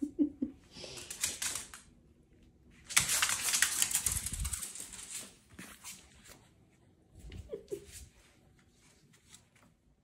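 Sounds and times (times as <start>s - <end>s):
dog claws clicking on floor: 0.8s - 2.0s, 2.8s - 6.4s.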